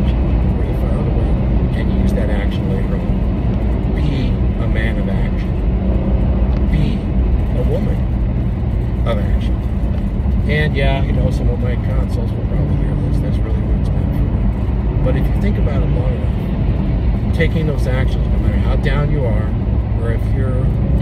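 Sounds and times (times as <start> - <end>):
man talking: 0.0 - 3.1, 3.9 - 5.5, 6.7 - 8.1, 9.0 - 9.6, 10.4 - 14.3, 15.0 - 16.4, 17.3 - 20.8
car cabin road rumble: 0.0 - 21.0.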